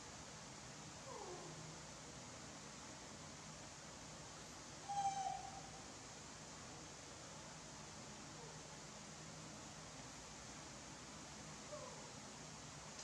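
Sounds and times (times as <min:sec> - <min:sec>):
macaque coo calls: 0:04.9 - 0:05.7.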